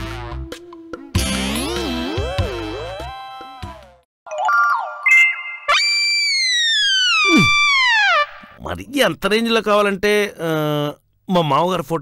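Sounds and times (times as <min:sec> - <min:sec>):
electronic whistle sliding down: 0:04.7 - 0:08.5.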